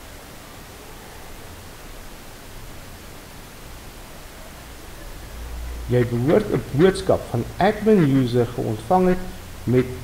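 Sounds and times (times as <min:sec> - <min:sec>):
microphone background hiss: 0:00.0 - 0:10.0.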